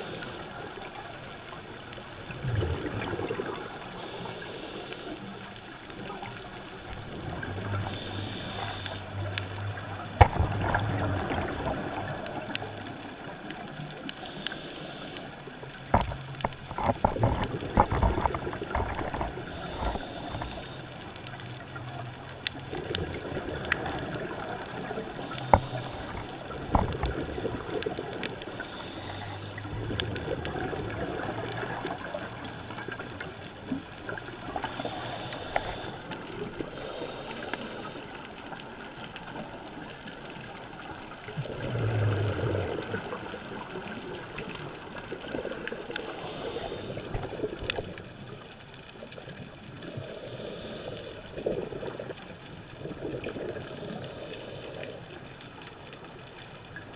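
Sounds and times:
gurgling exhaled bubbles: 0:01.6 - 0:05.0, 0:06.0 - 0:15.0, 0:15.6 - 0:56.9
regulator hissing inhales: 0:04.0 - 0:05.3, 0:07.9 - 0:09.1, 0:14.2 - 0:15.4, 0:19.4 - 0:20.9, 0:25.2 - 0:26.3, 0:28.4 - 0:29.6, 0:34.6 - 0:38.1, 0:46.0 - 0:47.2, 0:49.9 - 0:51.3, 0:53.6 - 0:55.0.

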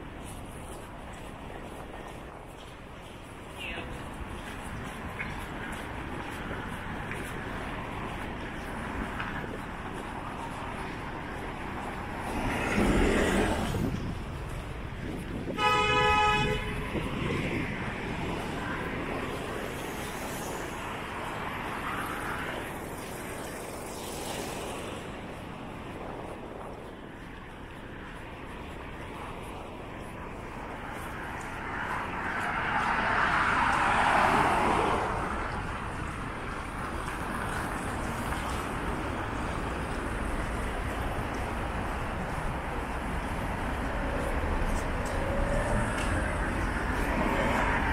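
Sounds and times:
road traffic: 0:00.0 - 0:47.9
car passing close by: 0:31.6 - 0:35.7.

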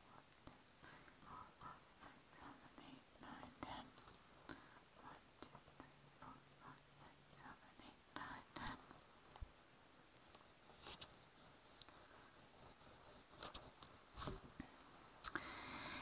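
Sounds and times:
faint whispering: 0:00.0 - 0:09.0.

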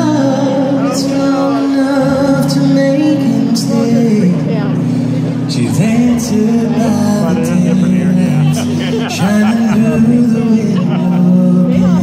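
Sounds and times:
low bass voice: 0:00.0 - 0:12.0.

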